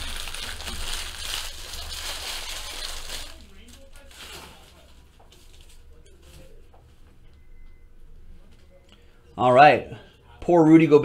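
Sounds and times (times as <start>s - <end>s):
foil wrappers crinkling and tearing: 0.0s - 6.5s.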